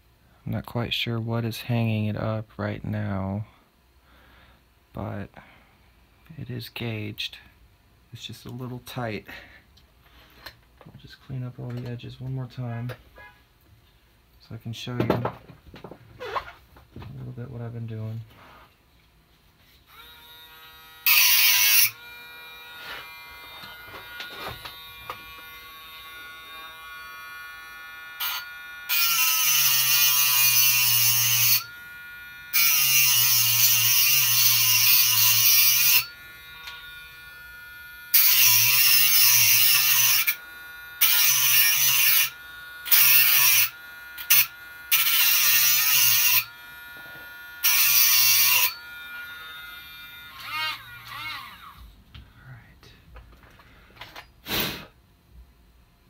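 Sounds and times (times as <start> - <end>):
rotary tool whine: 19.6 - 51.9
rotary tool grinding metal: 19.9 - 51.8.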